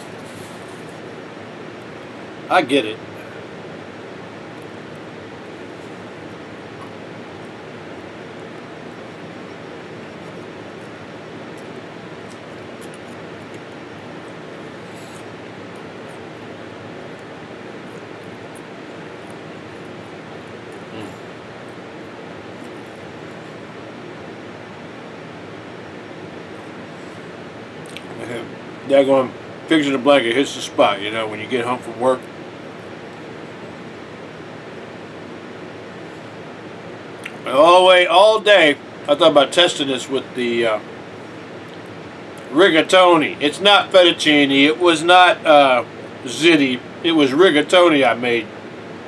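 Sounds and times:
steady hiss: 0.0s - 49.0s.

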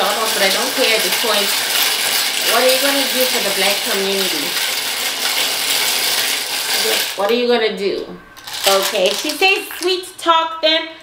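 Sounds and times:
shells rattling in a wooden bowl: 0.0s - 7.4s, 8.4s - 9.9s.

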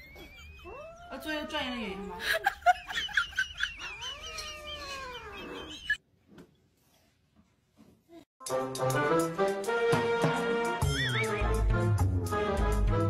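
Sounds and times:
kitten meowing: 4.1s - 5.7s.

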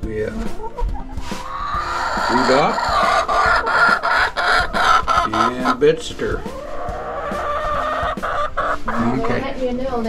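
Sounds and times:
hen calling: 0.6s - 9.6s.

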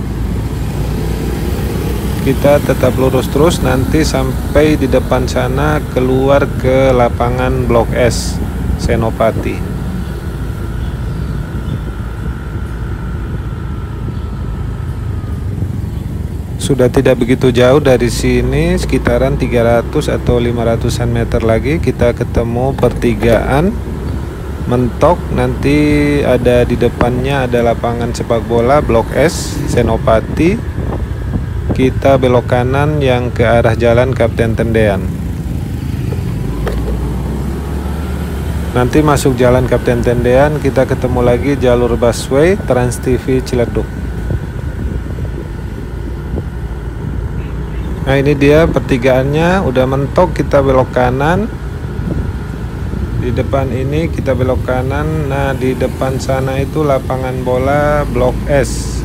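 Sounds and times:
vehicle engine and road rumble: 0.0s - 59.0s
faint thin whine: 2.1s - 59.0s.

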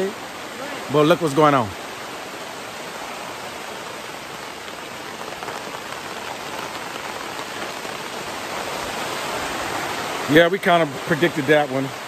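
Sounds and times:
rain on fabric canopy: 0.0s - 12.0s.

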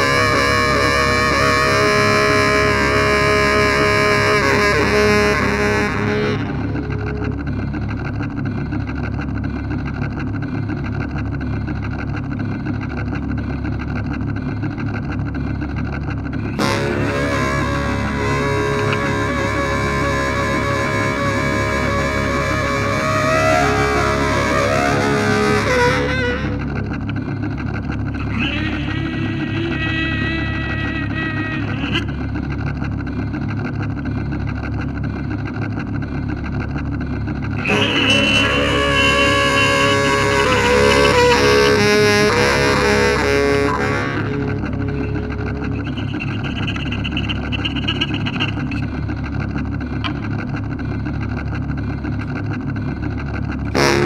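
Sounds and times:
baritone saxophone droning: 0.0s - 50.9s, 53.2s - 54.0s
low pulsing drone: 0.0s - 54.0s.

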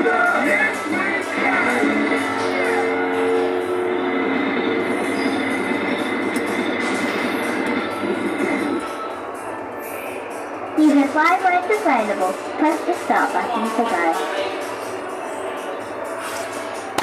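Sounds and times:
ride music: 0.0s - 17.0s.

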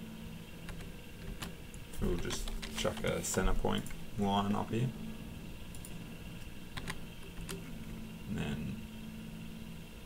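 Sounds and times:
steady low hum: 0.0s - 10.0s
mouse and keyboard clicks: 6.8s - 7.7s.

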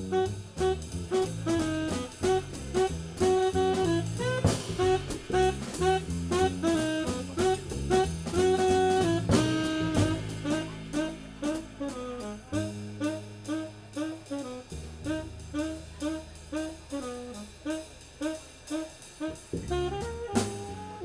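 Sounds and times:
drum kit: 0.0s - 21.0s
saxophone bent notes: 0.0s - 21.0s
upright bass: 0.0s - 21.0s.

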